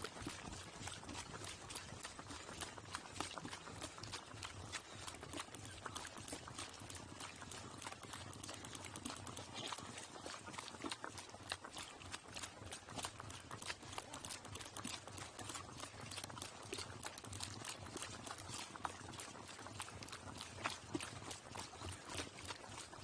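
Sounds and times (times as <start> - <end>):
hooves clopping on gravel road: 0.0 - 23.0.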